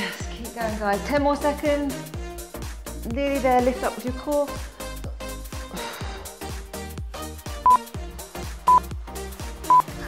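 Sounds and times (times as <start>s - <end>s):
background music with steady beat: 0.0s - 10.0s
short electronic beeps: 9.7s - 9.9s.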